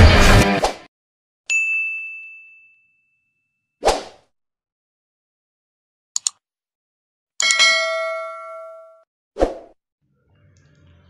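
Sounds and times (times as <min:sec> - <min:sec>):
notification bell chime: 0:01.5 - 0:03.2, 0:07.4 - 0:09.0
mouse clicks: 0:06.2 - 0:06.4.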